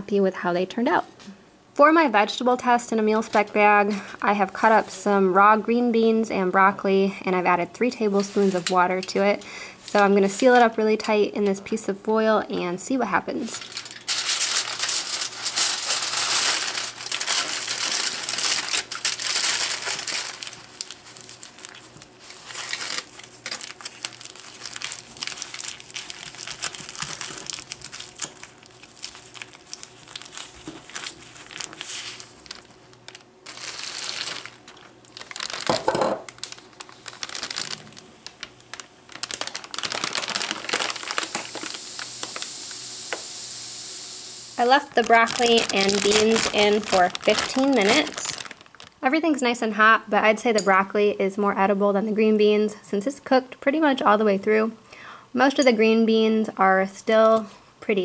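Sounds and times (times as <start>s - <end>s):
aluminium foil crinkling: 8.0s - 10.8s, 13.3s - 43.8s, 44.5s - 49.2s
heater bag venting steam hiss: 13.4s - 35.5s, 36.3s - 49.0s.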